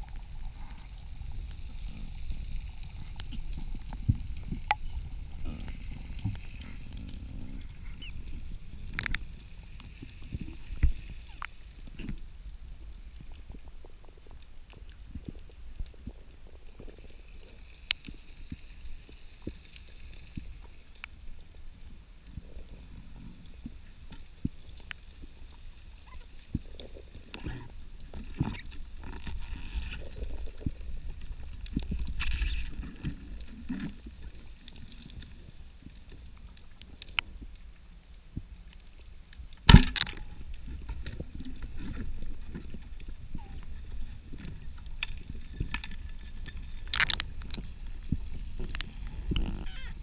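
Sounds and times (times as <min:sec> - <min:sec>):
underwater rumble of moving water: 0:00.0 - 0:50.0
small clicks and knocks: 0:08.2 - 0:09.3, 0:44.3 - 0:50.0.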